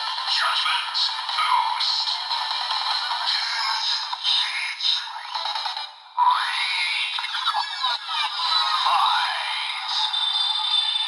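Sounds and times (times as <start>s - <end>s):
high chiming tone: 9.8s - 11.0s.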